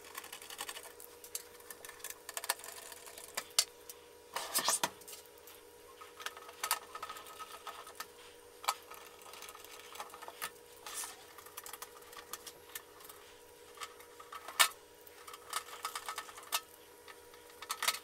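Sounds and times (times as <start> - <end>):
faint steady hum: 0.0 - 18.0.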